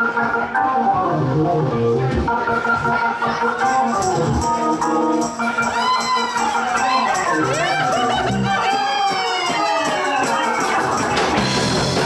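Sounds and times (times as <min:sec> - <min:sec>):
bass line: 0:00.0 - 0:12.0
guitar: 0:00.0 - 0:12.0.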